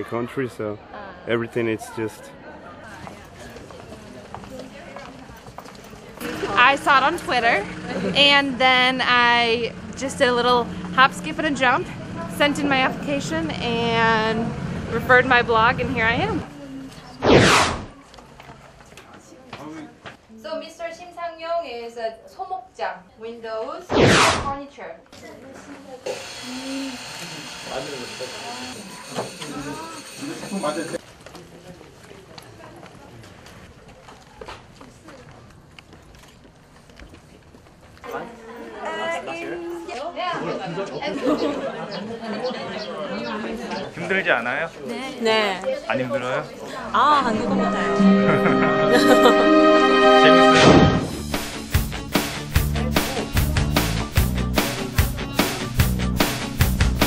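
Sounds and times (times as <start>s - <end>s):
faint voices: 0.0s - 17.2s
indistinct chatter: 0.0s - 23.1s, 24.5s - 50.6s
footsteps on pavement: 2.9s - 7.1s, 18.0s - 20.2s, 31.0s - 38.1s.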